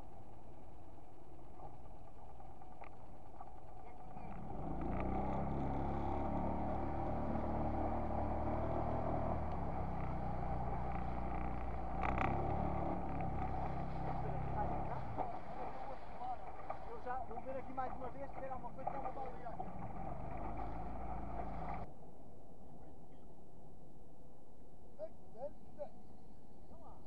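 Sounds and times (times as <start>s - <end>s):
outboard motor running: 0.0s - 21.9s
water rushing past hull: 4.0s - 21.9s.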